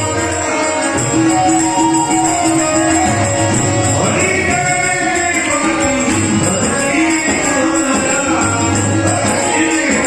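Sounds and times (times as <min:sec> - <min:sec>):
instrumental accompaniment: 0:00.0 - 0:10.0
voices singing devotional song: 0:00.0 - 0:10.0.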